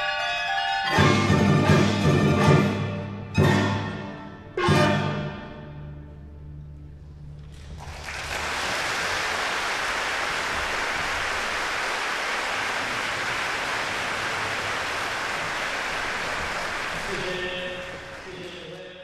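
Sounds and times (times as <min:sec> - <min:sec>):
audience applauding: 0:07.4 - 0:19.0.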